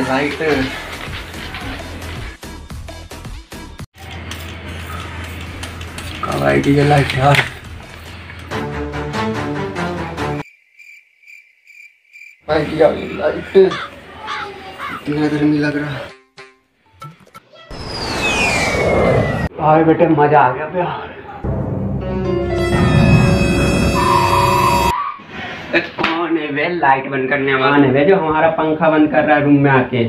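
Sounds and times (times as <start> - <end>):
music: 0.0 - 6.6, 7.2 - 10.4, 21.4 - 24.9
cricket chirping: 10.4 - 13.9
held high tone: 22.2 - 24.9.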